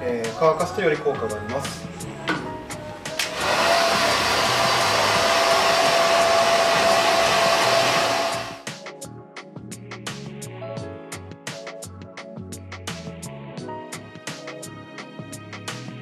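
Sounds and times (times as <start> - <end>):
hair dryer blowing with whine: 3.1 - 8.6.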